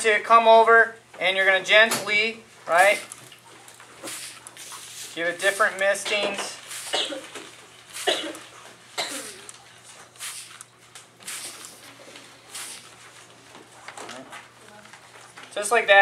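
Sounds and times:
spray bottle hissing: 4.0 - 5.7, 6.6 - 7.1, 7.9 - 8.4, 10.2 - 10.6, 11.2 - 12.9.

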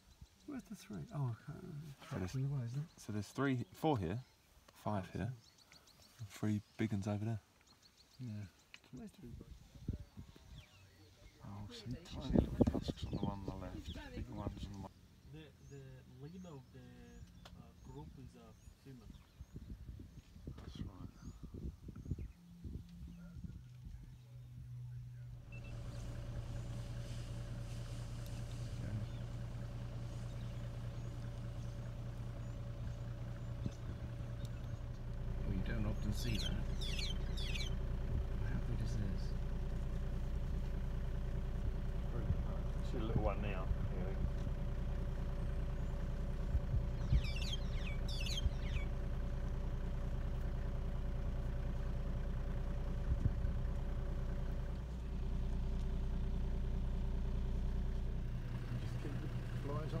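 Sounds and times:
vehicle engine idling: 0.0 - 60.0.

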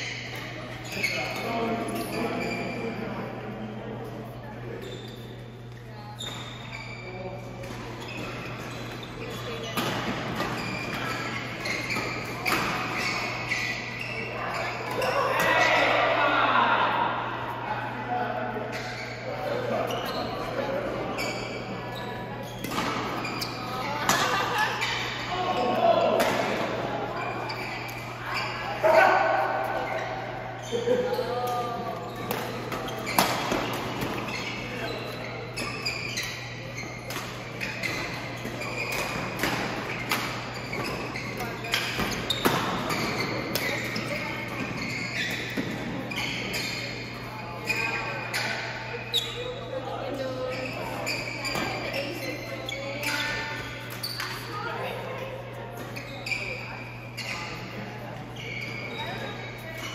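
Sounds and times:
voices in a hall: 0.0 - 59.9.

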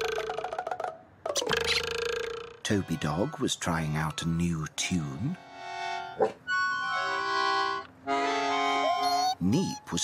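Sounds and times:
concertina playing chords: 2.6 - 10.0.

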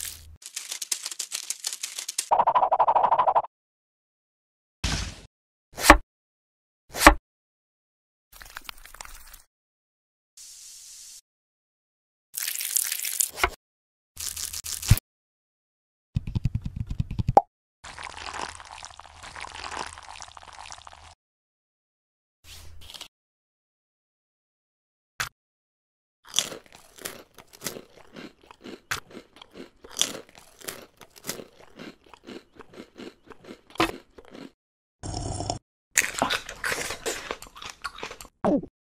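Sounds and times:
crunchy chewing: 26.3 - 34.6, 36.0 - 38.3.

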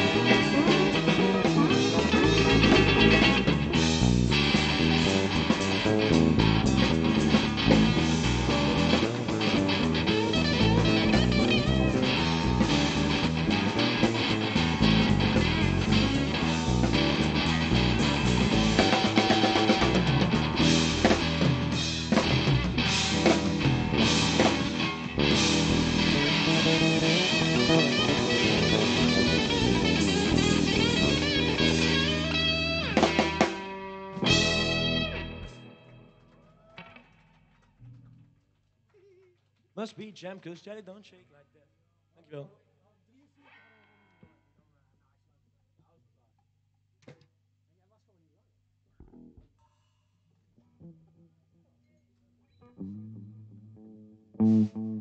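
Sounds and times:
drum kit: 0.0 - 36.2
bass guitar: 0.0 - 36.9, 49.0 - 49.6, 52.6 - 55.0
electric guitars: 0.0 - 37.1, 52.7 - 55.0.

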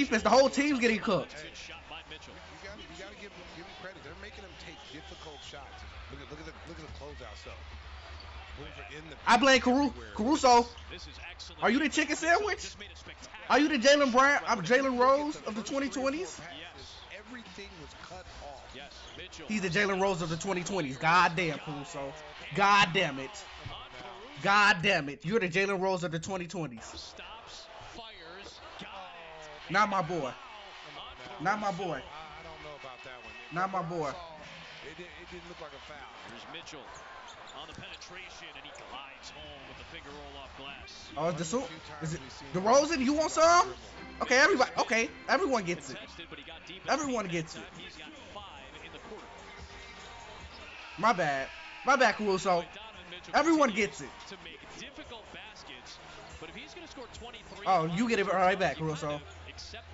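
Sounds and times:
faint commentator talking: 0.0 - 7.7
arena crowd noise: 0.0 - 59.9
commentator talking: 0.0 - 59.9.

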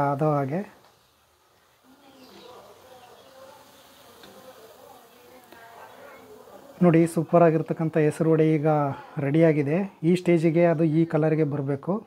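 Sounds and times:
hot oil sizzling: 0.0 - 12.0.

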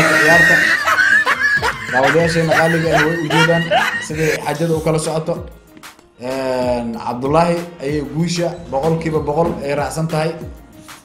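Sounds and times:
man snickering: 0.0 - 5.0
background music: 0.0 - 11.0.

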